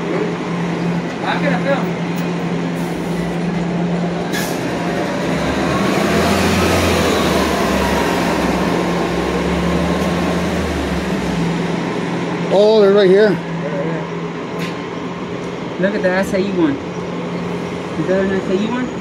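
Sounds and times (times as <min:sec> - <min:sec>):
heavy vehicle rumbling past: 0:00.0 - 0:19.0
street noise: 0:00.0 - 0:19.0.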